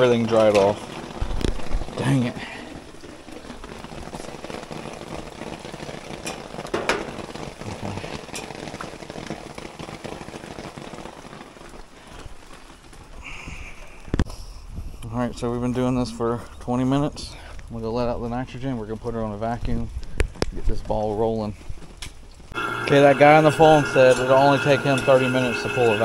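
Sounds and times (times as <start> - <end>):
steady rain falling: 0.0 - 26.0.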